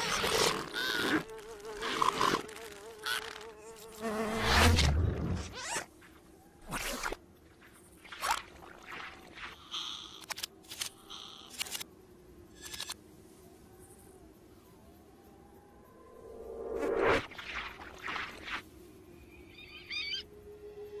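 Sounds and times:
quick clicks and swishes: 10.2s - 11.9s, 12.5s - 13.0s.

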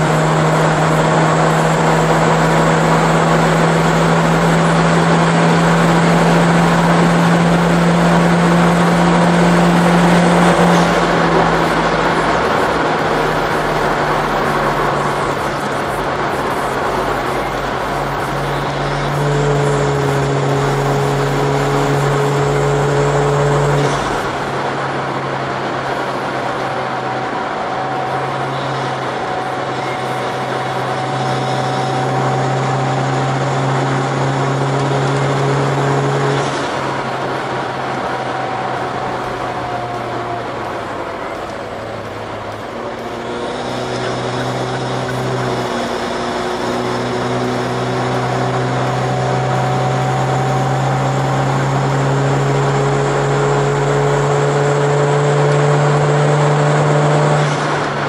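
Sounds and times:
car engine under load: 0.0s - 58.0s
faint high whine: 0.0s - 58.0s
road noise: 0.0s - 58.0s.

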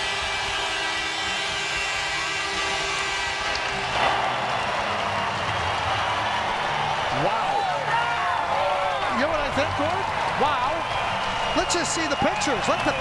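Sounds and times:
goal horn blaring: 0.0s - 4.1s
crowd cheering: 0.0s - 13.0s.

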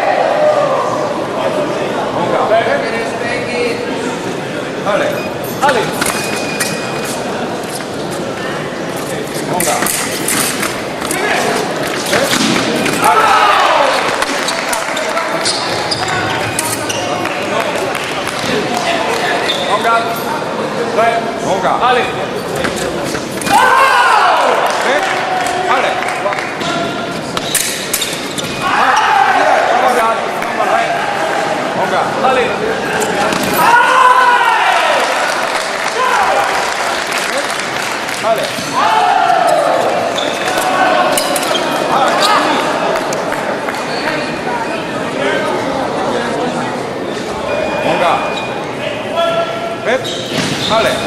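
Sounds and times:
voices and shouts: 12.9s - 17.4s, 23.4s - 27.0s, 28.5s - 37.1s, 38.3s - 45.5s.

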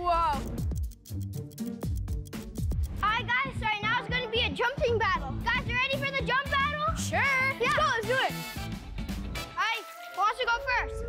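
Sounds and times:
background music: 0.0s - 11.0s
children talking and exclaiming: 3.0s - 8.4s, 9.6s - 11.0s.

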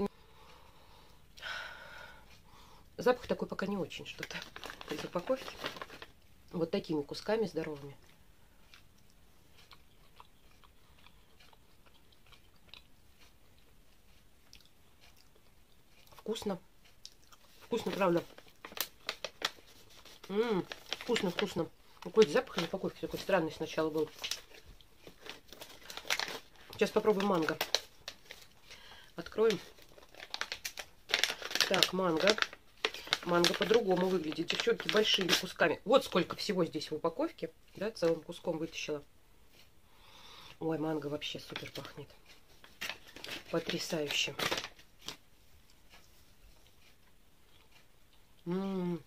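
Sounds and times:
plastic snack packet crinkling: 3.0s - 36.6s, 37.7s - 38.9s, 40.5s - 45.2s.

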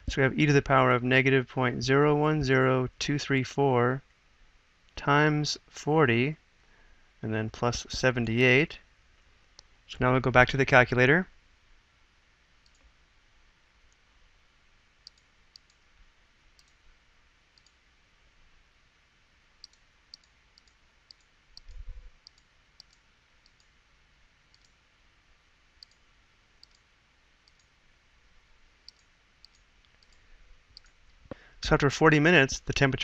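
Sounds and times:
computer mouse clicking: 12.6s - 12.9s, 15.1s - 15.8s, 16.6s - 16.8s, 17.6s - 17.8s, 19.6s - 23.7s, 24.5s - 24.8s, 25.8s - 26.0s, 26.6s - 26.8s, 27.4s - 27.7s, 28.8s - 31.0s.

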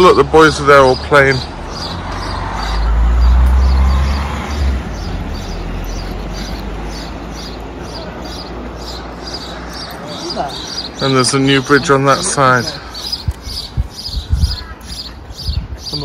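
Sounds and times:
outdoor noise: 0.0s - 16.0s
vehicle passing by: 0.2s - 13.0s.

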